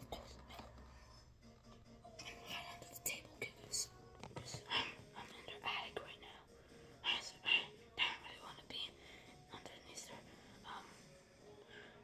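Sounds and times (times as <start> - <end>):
child whispering: 2.2 - 11.0.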